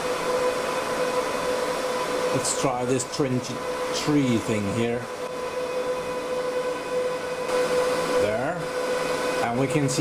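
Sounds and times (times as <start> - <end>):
server cooling fans whining: 0.0 - 10.0.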